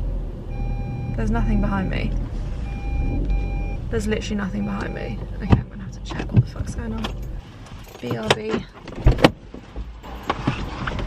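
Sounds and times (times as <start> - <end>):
low rumble: 0.0 - 7.6
parking sensor beeping: 0.5 - 6.3.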